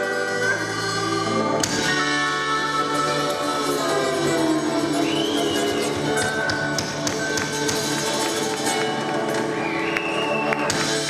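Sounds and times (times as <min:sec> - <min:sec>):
live country band playing: 0:00.0 - 0:11.0.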